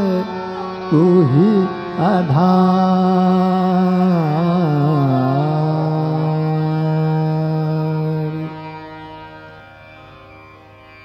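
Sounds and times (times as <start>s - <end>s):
man singing classical vocal: 0.0s - 8.9s.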